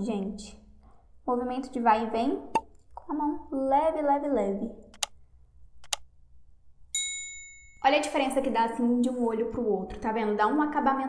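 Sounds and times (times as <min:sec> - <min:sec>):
mouse clicks: 0:04.9 - 0:05.2, 0:05.8 - 0:06.1
bright bell ding: 0:06.9 - 0:07.8.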